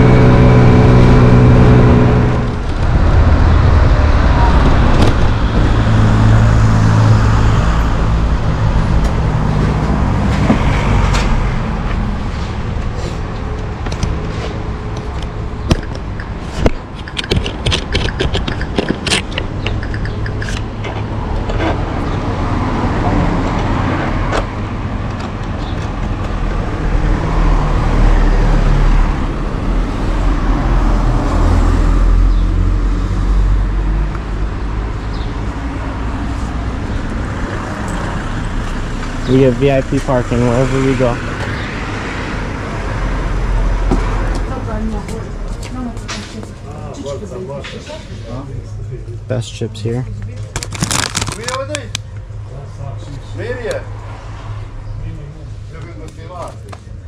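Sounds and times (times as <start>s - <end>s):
street traffic: 0.0s - 57.0s
sharp clicks and taps: 14.9s - 21.6s.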